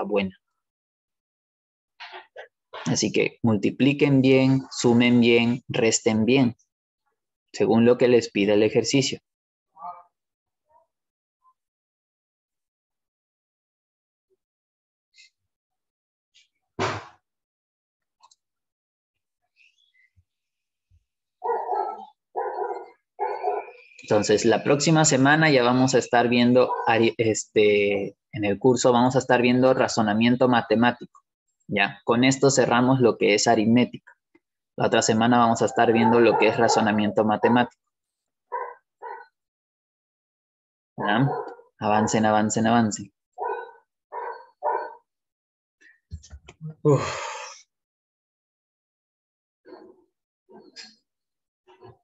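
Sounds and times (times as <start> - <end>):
dog barking: 21.4 - 23.8, 26.6 - 27.0, 35.7 - 37.7, 38.5 - 39.3, 41.0 - 42.2, 43.4 - 45.0.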